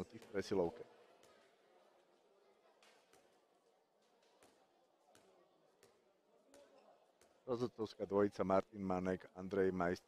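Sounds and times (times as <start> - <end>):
ball bouncing on court floor: 2.8 - 3.4, 4.0 - 7.5.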